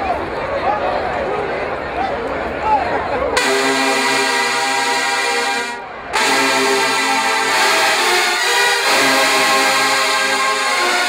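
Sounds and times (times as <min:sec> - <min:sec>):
brass band holding loud chords: 0:03.4 - 0:11.0.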